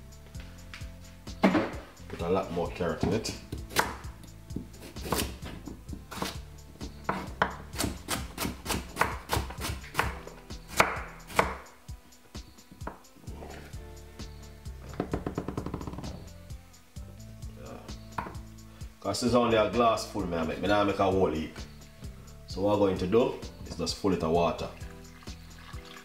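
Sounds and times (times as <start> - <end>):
knife chopping on wooden board: 3.0 - 6.4, 7.1 - 11.6, 18.2 - 18.4.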